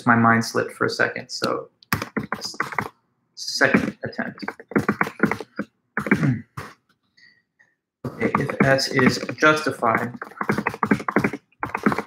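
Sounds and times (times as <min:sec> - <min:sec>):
fast typing on computer keyboard: 0:01.9 - 0:02.9, 0:03.7 - 0:06.2, 0:08.2 - 0:12.0.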